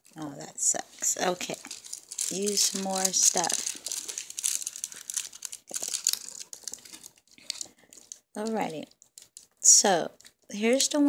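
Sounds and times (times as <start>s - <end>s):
plastic sleeve crinkling: 0.0s - 10.5s.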